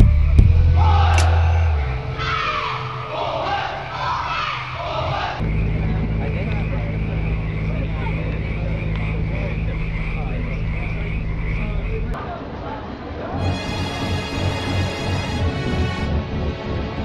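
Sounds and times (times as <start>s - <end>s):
steady low hum: 0.0s - 12.2s
group of voices calling out: 0.7s - 15.2s.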